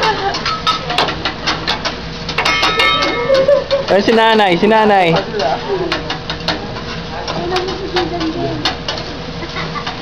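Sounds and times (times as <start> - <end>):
metal utensils clicking on griddle: 0.0 - 9.1.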